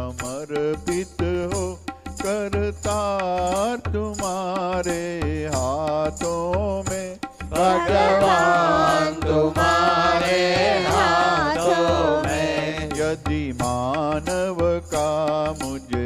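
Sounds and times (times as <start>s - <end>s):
hand drum beat: 0.1s - 16.0s
person singing: 7.5s - 13.9s.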